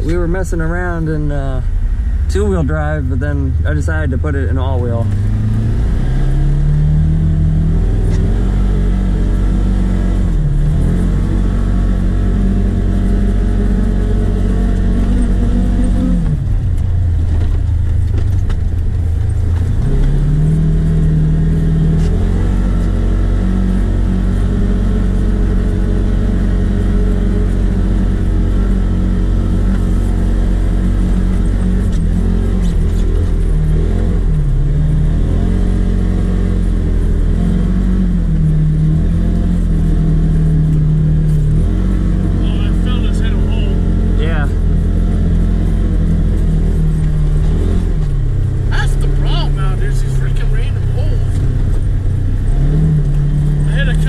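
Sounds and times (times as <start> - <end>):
vehicle engine revving: 0.0 - 54.0.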